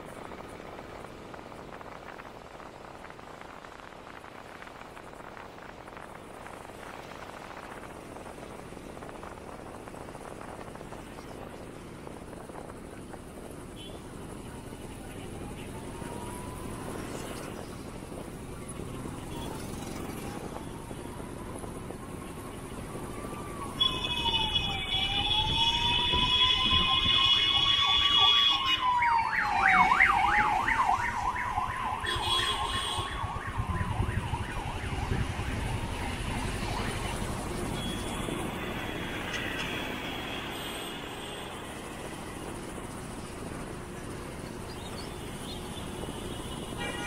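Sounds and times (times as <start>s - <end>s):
low traffic rumble: 0.0s - 47.0s
emergency vehicle siren: 0.1s - 47.0s
loud steady blare: 13.8s - 47.0s.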